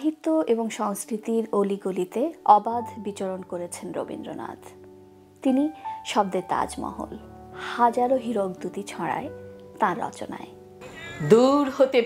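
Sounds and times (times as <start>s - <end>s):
soft background music: 0.0s - 12.0s
woman reciting poetry: 5.4s - 9.0s, 11.2s - 12.0s.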